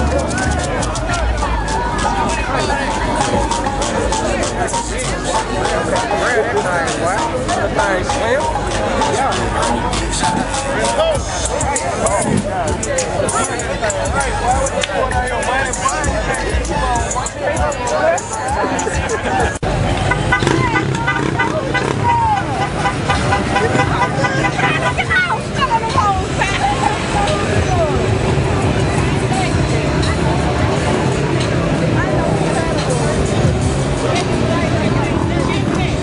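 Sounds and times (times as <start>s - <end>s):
crowd talking: 0.0s - 36.0s
music: 0.0s - 36.0s
vehicle engine running: 0.0s - 36.0s.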